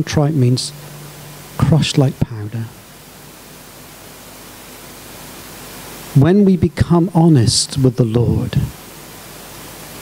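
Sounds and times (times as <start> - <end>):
faint low hum: 0.0 - 10.0
steady hiss: 0.0 - 10.0.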